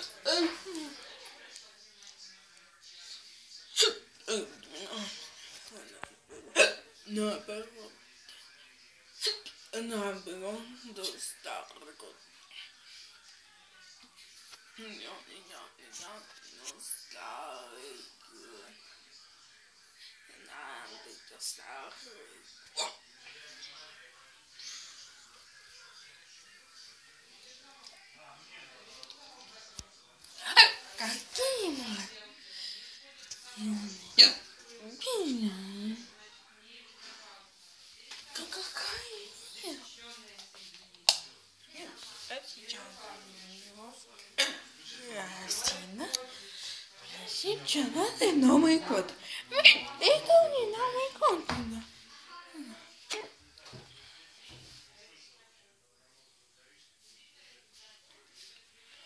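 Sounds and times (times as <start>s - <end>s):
quiet voiced sounds: 16.7s - 36.2s, 40.8s - 51.4s.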